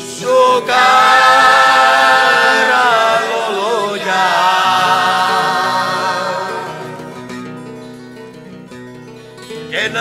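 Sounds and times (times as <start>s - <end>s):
folk singing in long notes: 0.1s - 7.4s.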